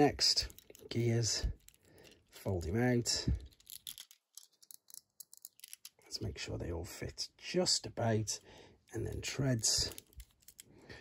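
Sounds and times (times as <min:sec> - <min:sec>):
plastic toy parts clicking: 0:00.4 - 0:01.0, 0:01.6 - 0:02.4, 0:03.4 - 0:06.0, 0:09.6 - 0:10.7.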